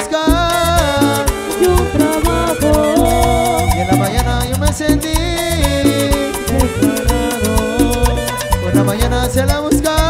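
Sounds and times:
cumbia band music: 0.0s - 10.0s.

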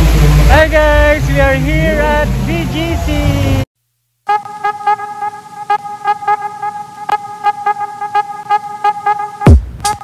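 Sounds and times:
held horn-like tone: 4.2s - 10.0s.

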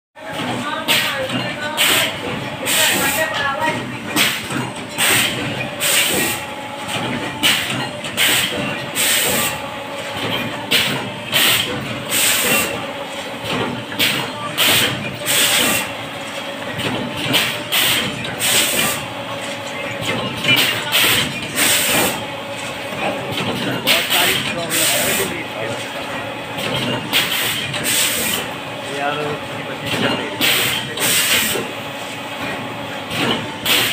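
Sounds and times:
steady machine hum: 0.2s - 33.9s.

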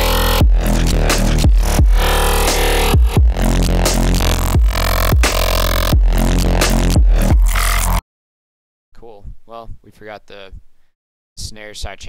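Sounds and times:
electronic music with heavy bass: 0.0s - 8.0s.

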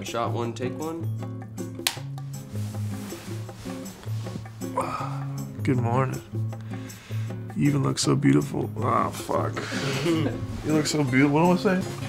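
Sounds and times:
background music with bass: 0.0s - 12.0s
clapperboard snapping shut: 1.8s - 2.1s.

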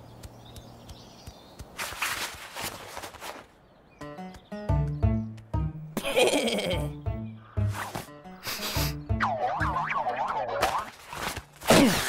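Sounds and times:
cartoon music with plucked notes: 4.0s - 10.9s.

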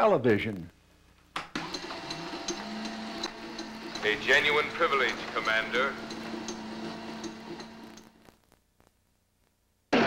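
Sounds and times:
steady hum: 2.1s - 10.0s.

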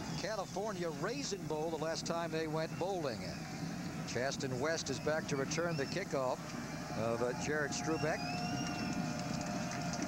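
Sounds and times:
stadium crowd voices: 0.0s - 10.0s.

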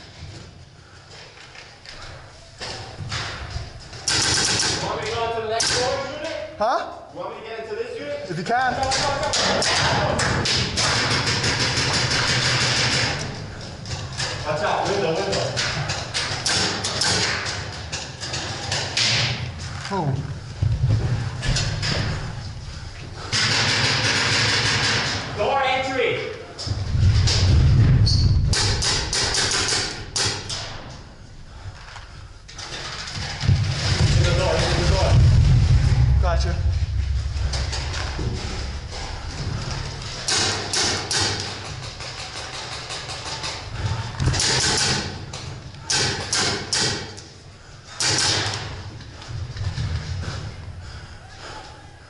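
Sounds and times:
deep rumbling movement noise: 19.4s - 23.3s, 26.4s - 29.1s, 31.0s - 40.6s, 48.7s - 52.0s.

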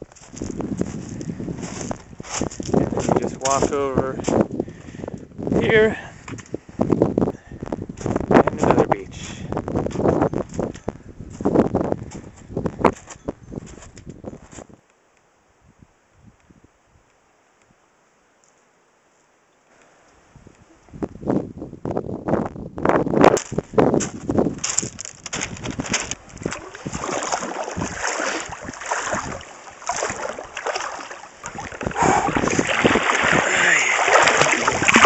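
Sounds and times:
wind buffeting microphone: 0.0s - 14.8s, 20.3s - 35.0s.

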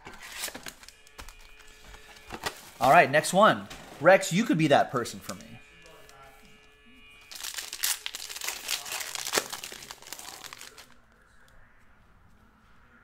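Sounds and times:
foil pack tearing and crinkling: 0.0s - 2.8s, 7.3s - 11.0s.

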